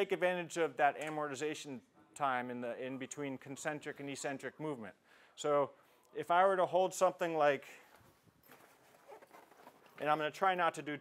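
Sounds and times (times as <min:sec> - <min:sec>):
bag rustling: 0:07.8 - 0:10.4.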